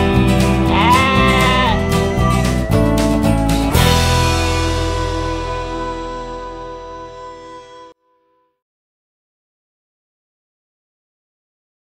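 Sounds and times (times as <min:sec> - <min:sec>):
loud music: 0:00.0 - 0:08.0
lamb bleating: 0:00.6 - 0:02.5.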